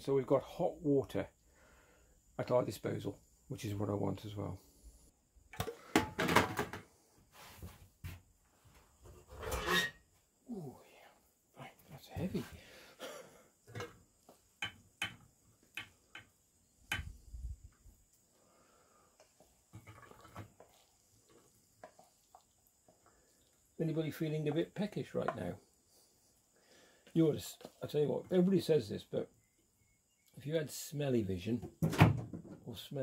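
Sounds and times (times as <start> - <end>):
spatula scraping pan: 9.2 - 10.0.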